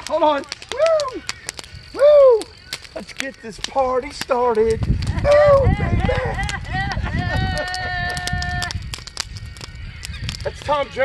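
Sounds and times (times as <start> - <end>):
sharp crackles: 0.0 - 11.0.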